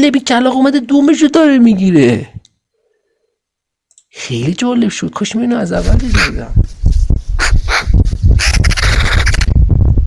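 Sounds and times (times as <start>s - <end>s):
magpie rattling chatter: 6.0s - 6.5s, 7.4s - 9.6s.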